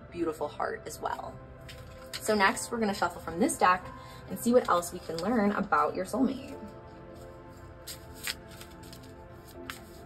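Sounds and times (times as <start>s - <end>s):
background music: 0.0s - 10.0s
cards being shuffled: 1.6s - 2.3s, 4.6s - 5.4s, 6.6s - 10.0s.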